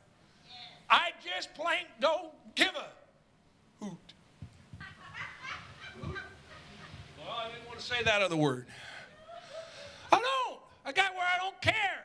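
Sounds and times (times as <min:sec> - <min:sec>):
congregation laughing: 0:04.8 - 0:08.1, 0:08.8 - 0:10.2
man speaking: 0:07.2 - 0:08.7.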